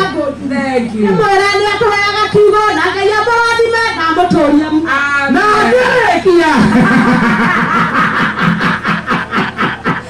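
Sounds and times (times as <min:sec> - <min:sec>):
person laughing: 0:06.6 - 0:10.0.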